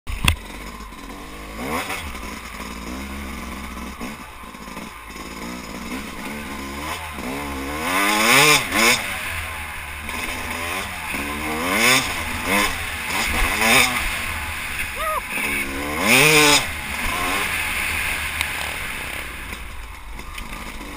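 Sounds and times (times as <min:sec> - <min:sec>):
dirt bike engine revving: 0:00.1 - 0:20.9.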